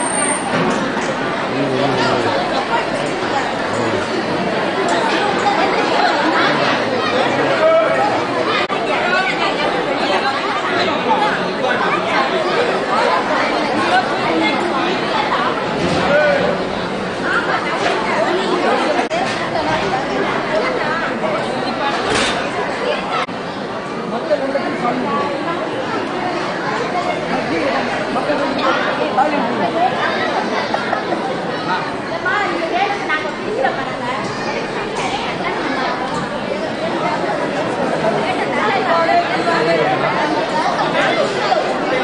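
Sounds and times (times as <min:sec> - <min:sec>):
crowd babble: 0:00.0 - 0:42.0.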